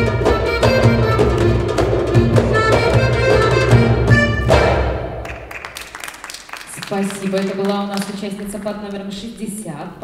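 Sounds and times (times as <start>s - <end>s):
accordion melody: 0.0s - 5.2s
hand drum rhythm: 0.0s - 5.7s.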